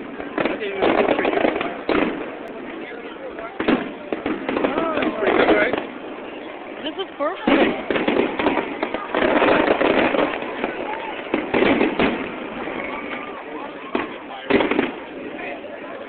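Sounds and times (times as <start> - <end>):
crowd chatter: 0.0 - 16.0
fireworks booming and crackling: 0.0 - 16.0.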